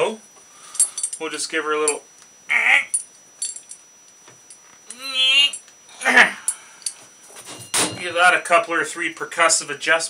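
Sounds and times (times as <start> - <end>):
light metal clicks and clinks: 0.8 - 1.2.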